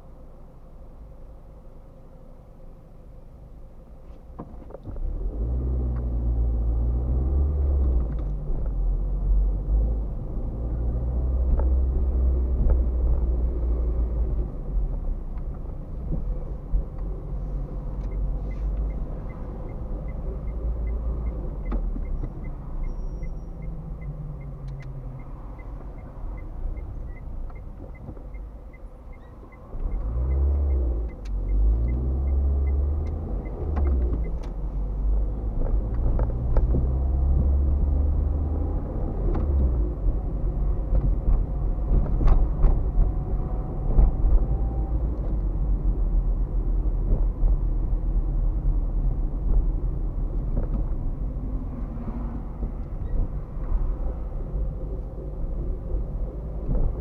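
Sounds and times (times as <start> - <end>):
road rumble: 0.0 - 57.0
car engine accelerating: 4.8 - 57.0
turn signal ticking: 14.8 - 52.0.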